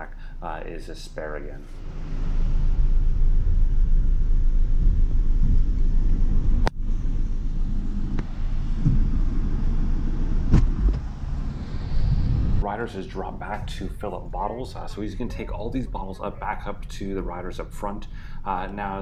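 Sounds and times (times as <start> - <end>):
low rumble: 0.0 - 19.0.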